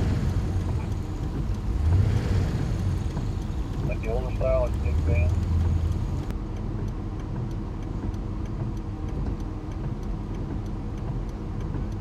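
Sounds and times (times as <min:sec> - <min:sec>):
engine idling: 0:00.0 - 0:06.3.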